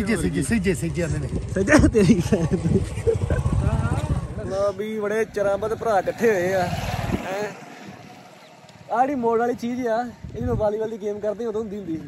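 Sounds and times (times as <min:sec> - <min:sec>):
wind rumble on microphone: 0:00.0 - 0:11.3.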